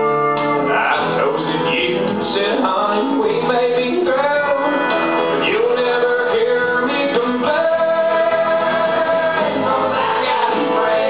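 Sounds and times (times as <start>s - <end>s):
strummed acoustic guitar: 0.0s - 11.0s
person singing: 0.6s - 11.0s.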